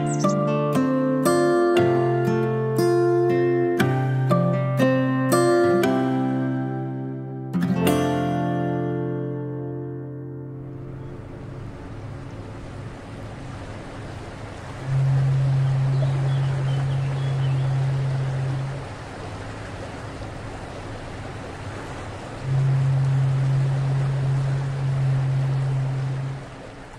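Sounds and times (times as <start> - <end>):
long low steady tone: 0.0 - 4.4, 5.6 - 26.9
water and waves: 0.0 - 26.9.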